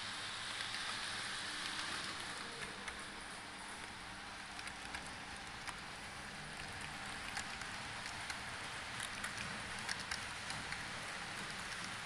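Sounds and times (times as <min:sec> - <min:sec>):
wheels clicking on rails: 0:00.0 - 0:12.0.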